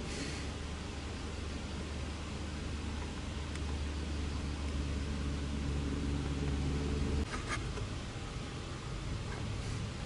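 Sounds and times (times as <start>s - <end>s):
car engine droning at low revs: 0.0s - 10.0s
distant engine and road noise: 0.0s - 10.0s.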